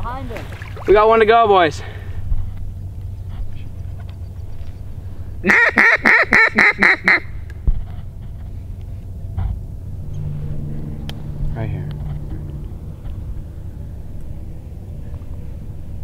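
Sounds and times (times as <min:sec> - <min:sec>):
duck quacks: 0:05.4 - 0:07.3.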